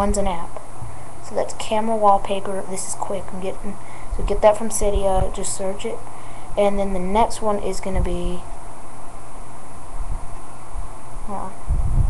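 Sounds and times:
faint low hum: 0.0 - 12.0
steady microphone hiss: 0.0 - 12.0.

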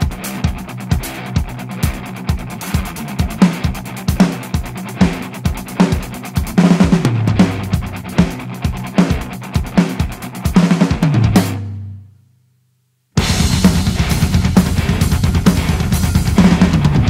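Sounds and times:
rock drum kit playing: 0.0 - 12.0, 13.2 - 17.0
sustained bass line: 13.2 - 17.0.

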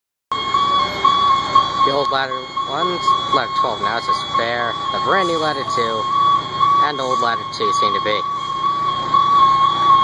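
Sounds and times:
high-pitched electronic warning tone: 0.3 - 10.0
low street noise: 0.3 - 10.0
man speaking: 1.8 - 6.1, 6.8 - 8.3.

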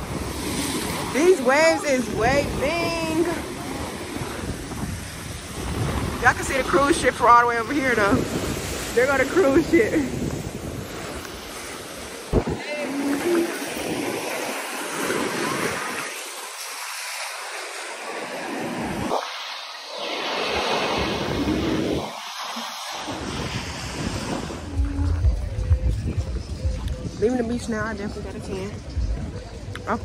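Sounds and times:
wind on microphone: 0.0 - 16.8, 18.4 - 30.0
surf breaking on sandy shore: 0.0 - 27.1
faint voices: 11.4 - 21.8, 24.2 - 30.0.

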